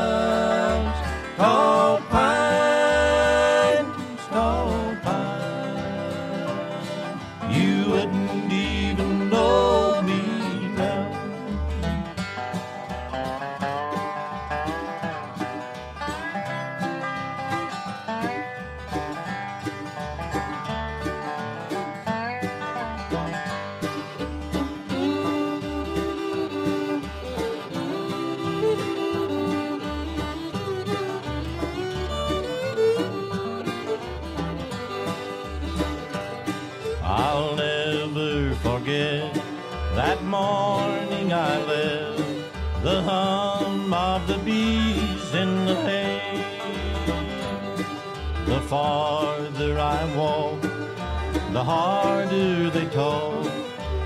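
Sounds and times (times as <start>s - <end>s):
banjo: 0.0s - 54.0s
guitar sliding lead line: 0.0s - 54.0s.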